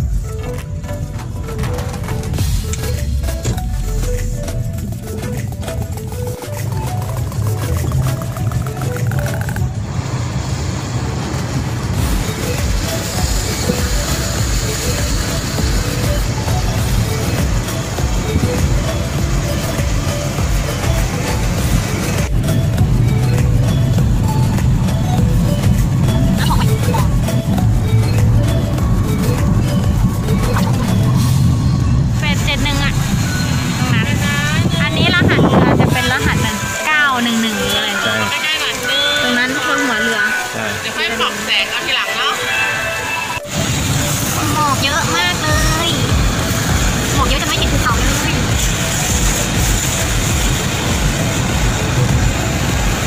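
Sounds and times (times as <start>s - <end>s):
engine and road rumble: 0.0s - 53.0s
music playing: 0.0s - 53.0s
singing voice in background music: 33.8s - 43.4s
tyre and wind hiss: 43.5s - 53.0s.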